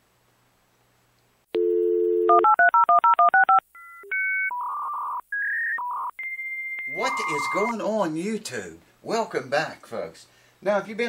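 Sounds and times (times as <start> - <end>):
touch-tone digits dialed: 1.6 - 4.7, 6.8 - 7.7
telephone dial tone: 1.6 - 5.2
short electronic beeps: 5.5 - 7.7
long steady high tone: 6.8 - 7.7.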